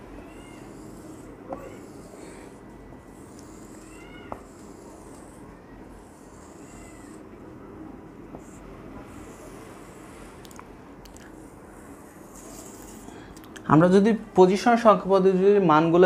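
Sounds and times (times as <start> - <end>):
marker squeaks: 0.4 - 5.4
marker scratching on whiteboard: 0.4 - 7.3, 8.3 - 10.4, 11.3 - 13.1.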